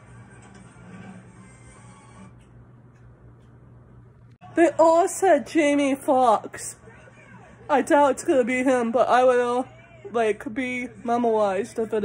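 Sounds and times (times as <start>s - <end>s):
faint television music: 0.0s - 12.0s.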